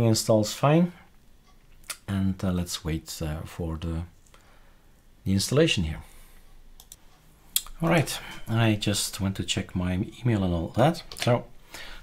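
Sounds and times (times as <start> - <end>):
man speaking: 0.0 - 1.1, 1.9 - 4.2, 5.2 - 6.2, 7.6 - 11.6.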